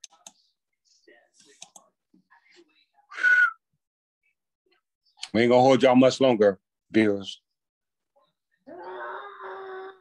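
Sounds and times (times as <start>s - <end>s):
breathy whistle: 3.1s - 3.6s.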